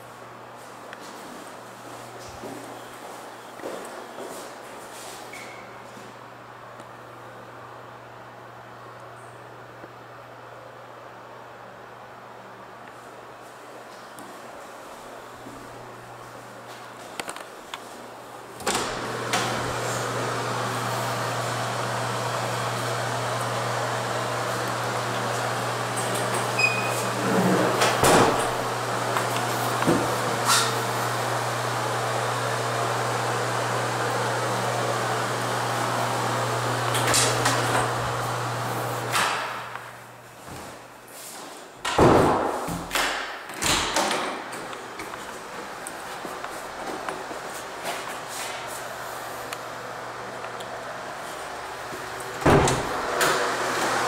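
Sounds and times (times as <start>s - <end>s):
exhaust fan running: 5.8s - 54.0s
door thudding: 28.0s - 28.6s, 52.4s - 53.0s.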